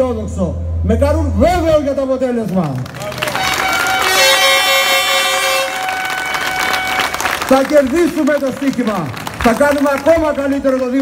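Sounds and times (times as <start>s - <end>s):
crowd cheering: 2.8s - 11.0s
horns blowing steady notes: 3.0s - 8.5s.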